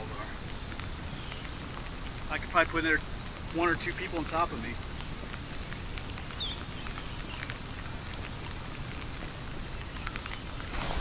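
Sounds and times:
faint ticks: 0.4 - 10.7.

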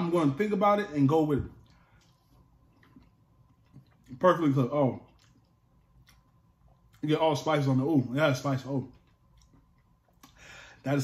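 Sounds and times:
faint chewing: 1.6 - 4.3, 4.9 - 7.1, 8.6 - 10.4.

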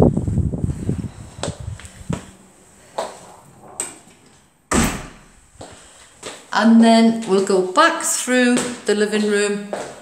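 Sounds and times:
door banging shut: 4.7 - 5.5.

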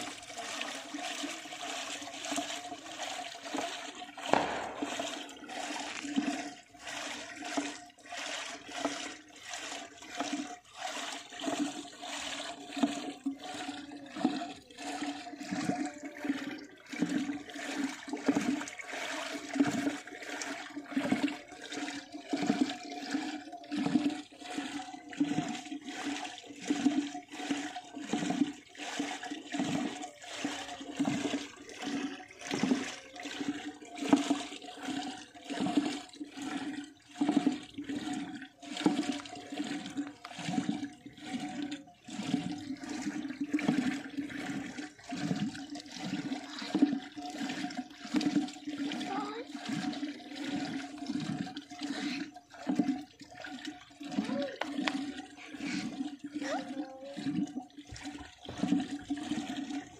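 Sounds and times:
milk sloshing in a pot: 0.0 - 59.9.

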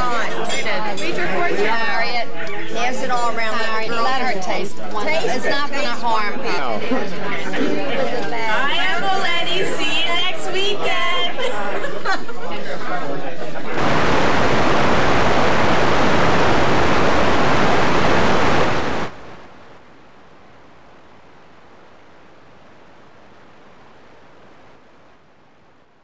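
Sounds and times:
videotape static hiss: 13.8 - 26.0.

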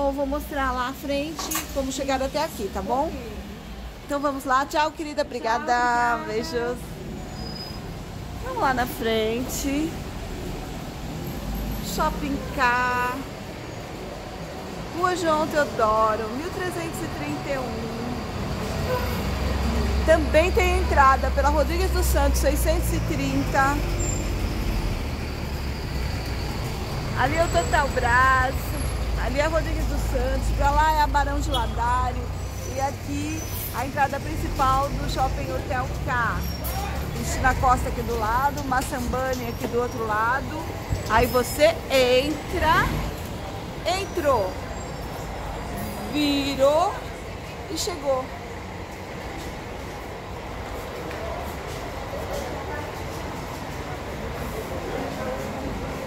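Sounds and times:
city noise: 0.0 - 56.0
vehicle engines rumbling: 0.0 - 56.0.

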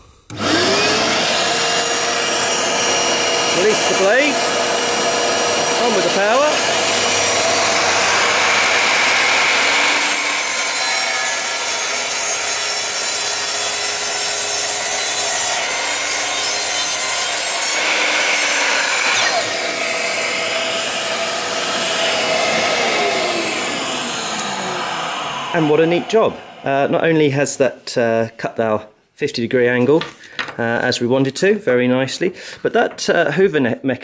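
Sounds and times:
vacuum running: 0.0 - 16.3, 17.0 - 27.2
saw motor winding down: 0.2 - 27.1
mitre saw cutting wood: 0.3 - 27.2.

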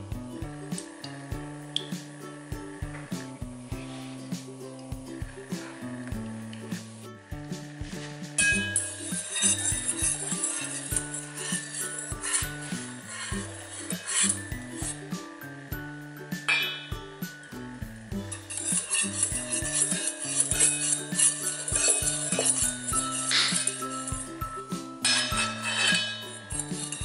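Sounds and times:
background music: 0.0 - 27.0
whisk clinking in metal bowl: 8.4 - 15.2, 18.2 - 27.0.

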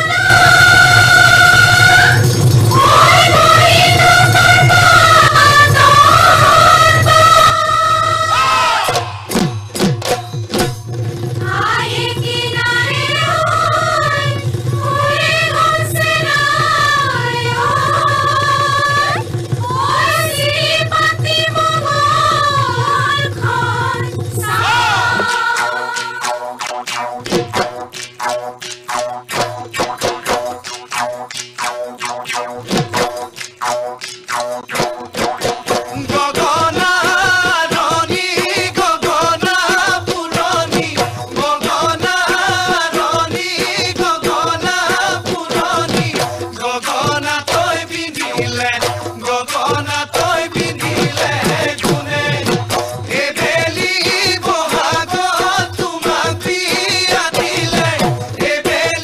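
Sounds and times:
folk music: 0.0 - 8.8
dhol drum strikes: 0.1 - 8.2, 8.8 - 59.0
crowd shouting: 2.8 - 9.4, 19.6 - 25.9
jaw harps twanging: 24.4 - 36.1.

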